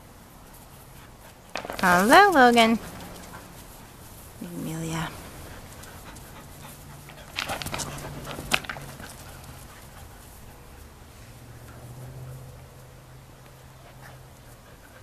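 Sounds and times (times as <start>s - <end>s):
puppies panting and snuffling: 0.4s - 15.0s.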